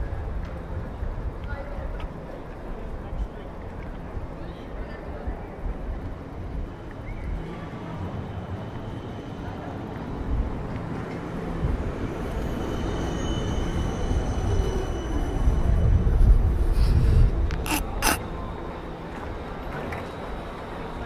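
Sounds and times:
tram rumbling past: 0:05.4 - 0:21.0.

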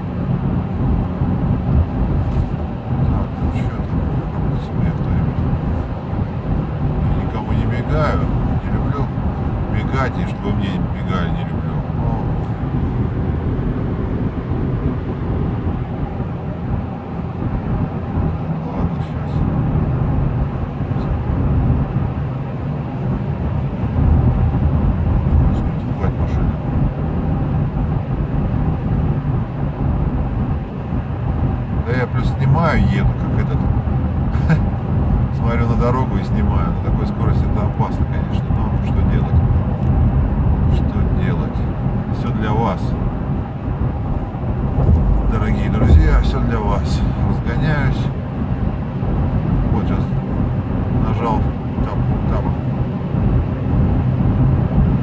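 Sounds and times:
car cabin rumble: 0:00.0 - 0:55.0
indistinct voices: 0:45.2 - 0:48.0.

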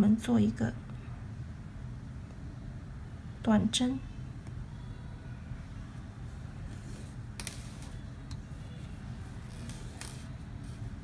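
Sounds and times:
low background hum: 0:00.0 - 0:11.0
needle and thread through fabric: 0:06.3 - 0:11.0.

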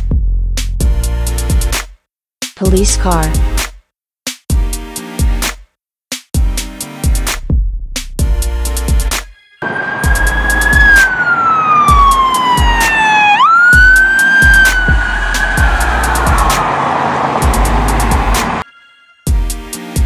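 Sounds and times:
music beat with bass drum: 0:00.0 - 0:01.9, 0:04.3 - 0:09.2, 0:11.9 - 0:13.0, 0:13.7 - 0:16.6, 0:17.4 - 0:18.6, 0:19.3 - 0:20.0
police siren wailing: 0:09.6 - 0:18.6.

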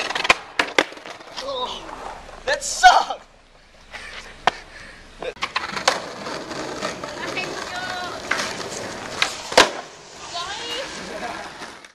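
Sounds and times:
skateboard clacking on road: 0:00.0 - 0:02.4, 0:05.4 - 0:11.9
skateboard wheels rolling on asphalt: 0:00.0 - 0:04.6, 0:05.4 - 0:11.9.

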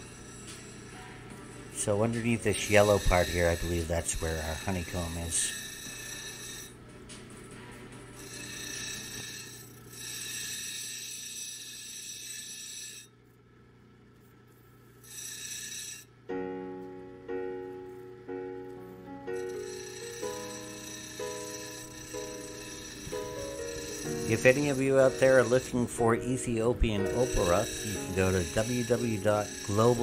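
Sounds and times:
stone grinding hiss: 0:00.0 - 0:06.8, 0:08.2 - 0:13.2, 0:14.6 - 0:16.1, 0:19.3 - 0:30.0
grinding wheel motor hum: 0:00.0 - 0:16.5, 0:17.7 - 0:30.0
piano-like keyboard music: 0:16.3 - 0:30.0.

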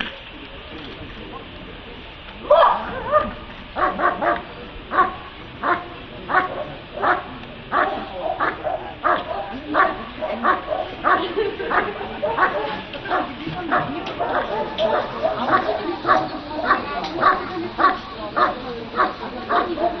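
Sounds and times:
dog barking: 0:02.6 - 0:20.0.

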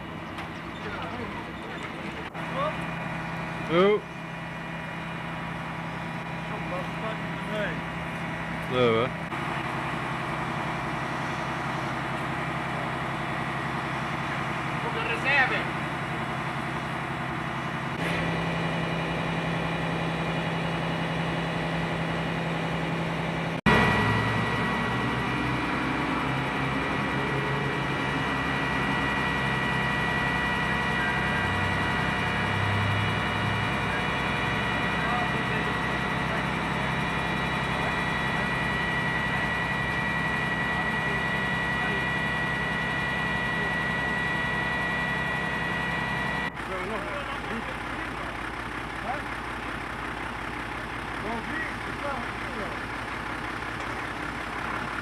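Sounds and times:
fire engine idling: 0:00.0 - 0:55.0
steady high whine: 0:04.9 - 0:47.6.

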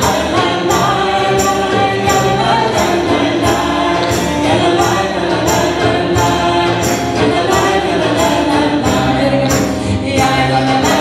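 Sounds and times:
group singing with accompaniment: 0:00.0 - 0:11.0
jingling percussion: 0:00.0 - 0:11.0.

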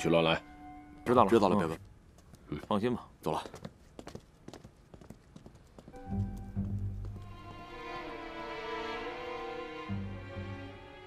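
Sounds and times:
footsteps on hard floor: 0:03.6 - 0:07.6.

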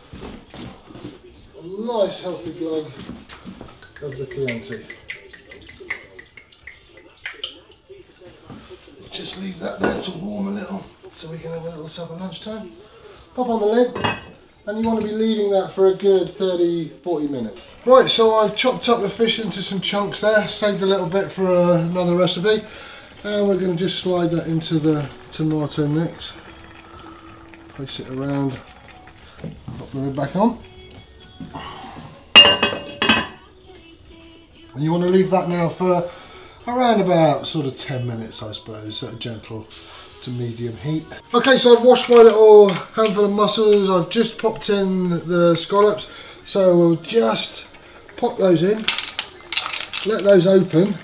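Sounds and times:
pot lid clanking: 0:32.4 - 0:33.4
lid rattling: 0:48.8 - 0:50.4.

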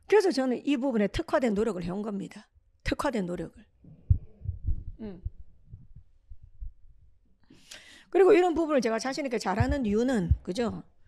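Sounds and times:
microphone handling thumps: 0:03.9 - 0:06.9, 0:09.5 - 0:10.9
person murmuring: 0:04.9 - 0:05.4
footsteps: 0:09.6 - 0:10.8.

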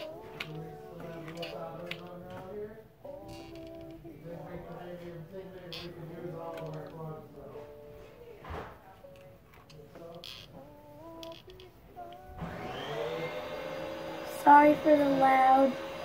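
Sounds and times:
appliance motor whirring: 0:12.2 - 0:16.0.

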